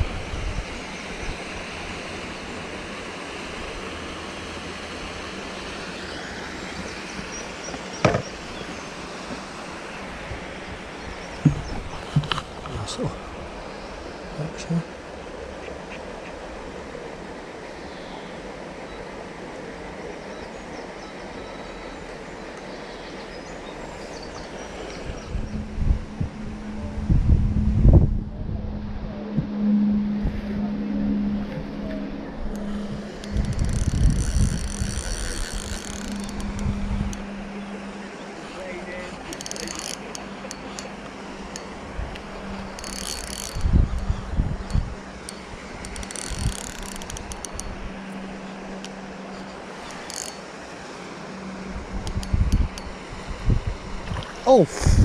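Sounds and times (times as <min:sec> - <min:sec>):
wind buffeting microphone: 0:00.0 - 0:01.5, 0:10.1 - 0:13.6, 0:24.9 - 0:38.0, 0:41.4 - 0:49.8, 0:51.4 - 0:55.0
steady low hum: 0:23.6 - 0:55.0
fishing reel clicking and whirring: 0:32.5 - 0:38.0, 0:38.8 - 0:53.4.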